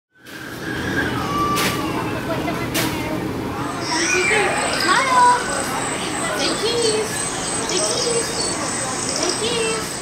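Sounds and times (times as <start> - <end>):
faint indistinct voices: 0.2 - 10.0.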